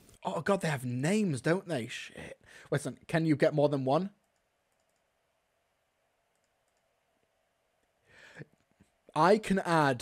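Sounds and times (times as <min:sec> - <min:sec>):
computer mouse clicks: 0:04.2 - 0:05.1, 0:06.3 - 0:06.9.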